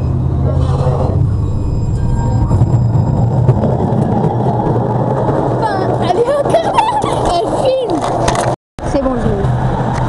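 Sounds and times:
tram rumbling past: 0.0 - 10.0.

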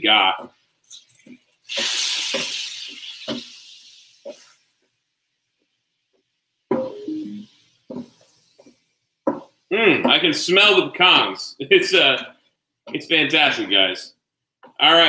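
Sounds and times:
liquid sizzling on hot griddle: 0.9 - 4.7.

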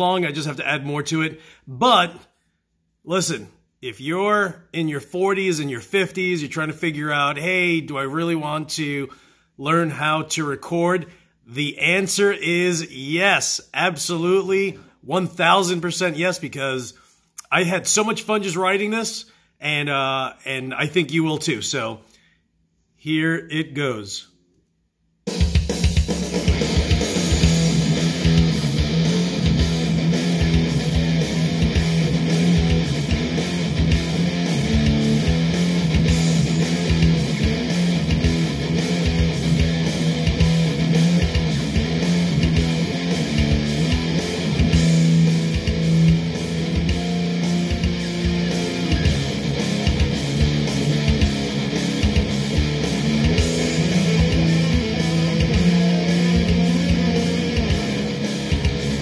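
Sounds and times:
heavy metal instrumental: 25.3 - 59.0
lead guitar solo: 26.4 - 59.0.

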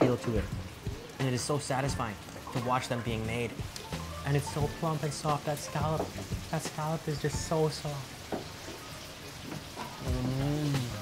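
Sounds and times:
food frying in hot oil: 0.0 - 11.0.

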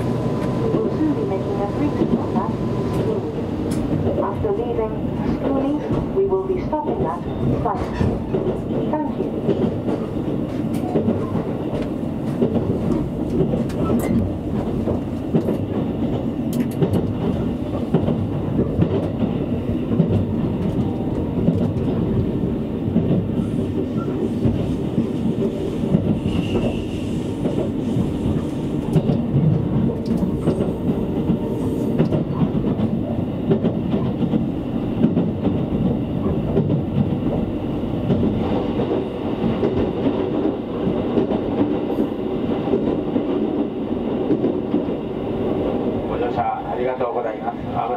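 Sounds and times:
train wheels rumbling on rails: 0.0 - 47.9.

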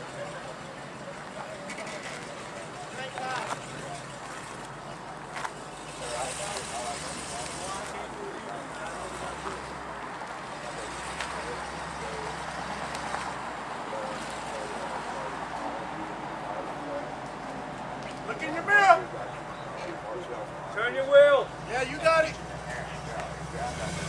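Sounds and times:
faint voices: 0.0 - 24.0
truck engine running: 0.0 - 24.0.

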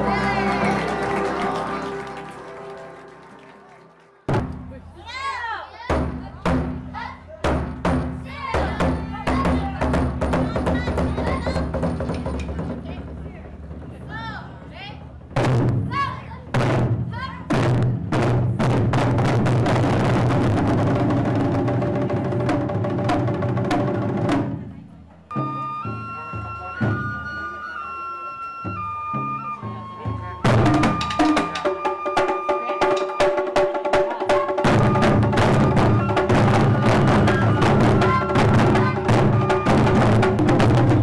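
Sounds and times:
drums beaten in fast roll: 0.0 - 5.2, 5.8 - 25.8, 29.2 - 41.0.

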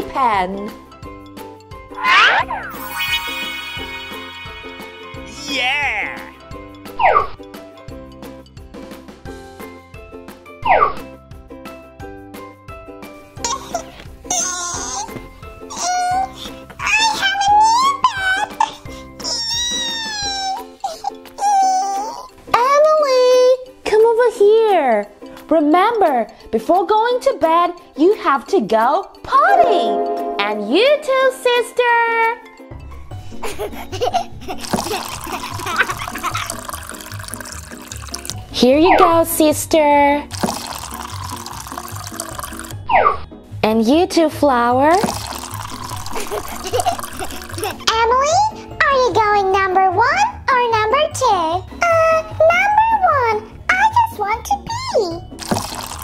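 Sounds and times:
light background music: 0.0 - 56.0
high-pitched gliding vocal calls: 2.0 - 6.4
water trickling into plastic potty: 34.6 - 38.5, 40.3 - 42.8, 44.9 - 47.9, 55.4 - 56.0.

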